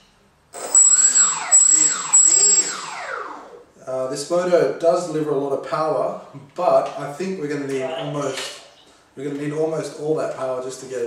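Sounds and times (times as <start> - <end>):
thin high whine: 0.5 - 3.8.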